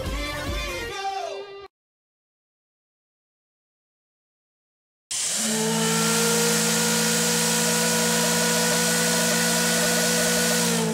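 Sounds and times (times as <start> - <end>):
loud rushing hiss: 5.1 - 10.9
held low hum: 5.2 - 10.9.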